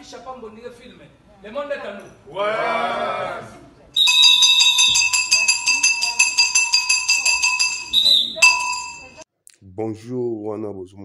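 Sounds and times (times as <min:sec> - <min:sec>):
rapid bell-like ringing: 0:04.0 - 0:09.2.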